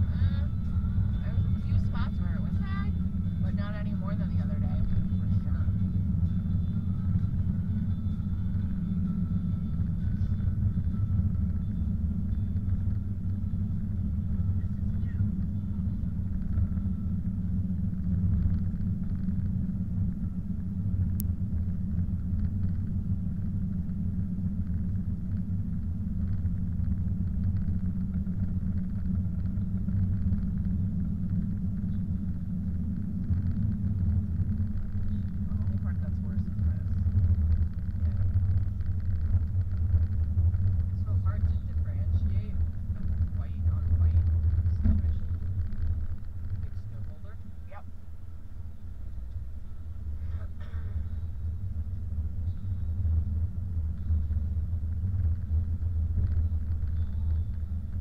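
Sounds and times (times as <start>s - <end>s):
car engine rumble: 0.0s - 58.0s
tyres on snowy road: 0.0s - 58.0s.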